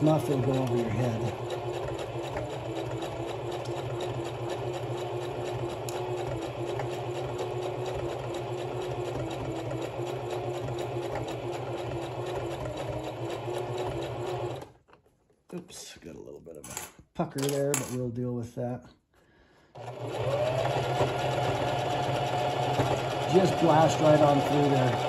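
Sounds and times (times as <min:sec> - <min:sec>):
sewing machine running: 0:00.0 - 0:14.8, 0:19.7 - 0:25.0.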